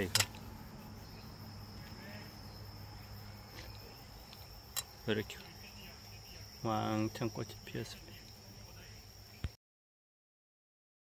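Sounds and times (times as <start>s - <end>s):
low steady hum: 0.0s - 9.4s
cricket chirping: 0.0s - 9.6s.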